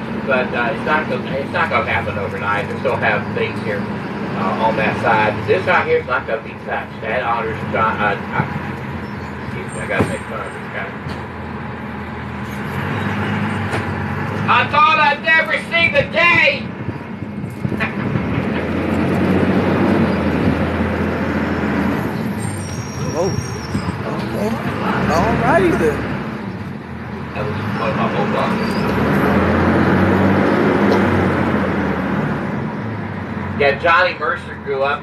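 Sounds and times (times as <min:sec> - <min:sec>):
trolley engine hum and road noise: 0:00.0 - 0:35.0.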